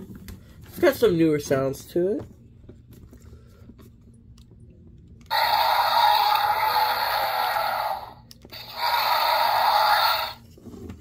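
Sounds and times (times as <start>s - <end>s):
toy dinosaur roars: 5.3s - 10.4s.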